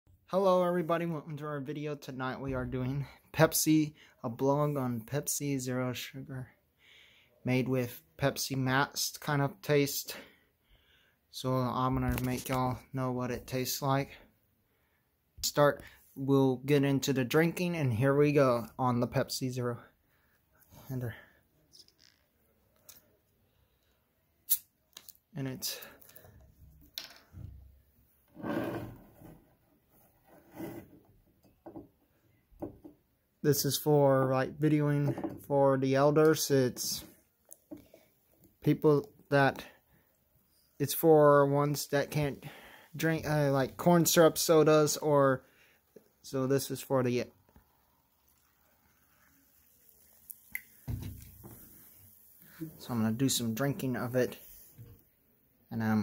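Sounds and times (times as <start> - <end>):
plastic bottle rubbing and knocking: 28.3 - 31.1
bottle set down on wooden table: 35.1 - 35.4, 50.9 - 51.6
cola pouring into glass: 45.8 - 52.7
fizz hissing: 47.4 - 52.9.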